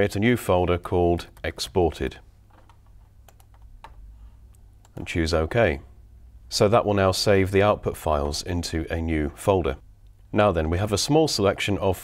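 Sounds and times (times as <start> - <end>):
computer keyboard keystrokes: 2.5 - 4.0.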